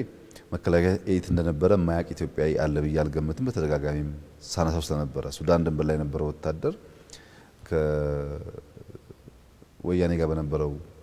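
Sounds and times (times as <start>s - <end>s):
man talking: 0.0s - 6.8s, 7.6s - 9.2s, 9.8s - 11.0s.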